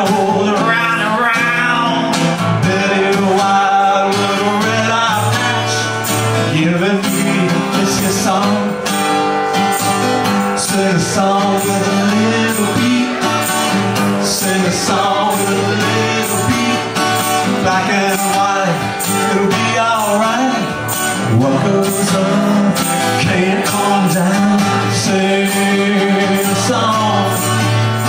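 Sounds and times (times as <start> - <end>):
acoustic guitar strumming: 0.0 - 28.0
man singing: 0.0 - 28.0
tambourine shaking: 4.0 - 28.0.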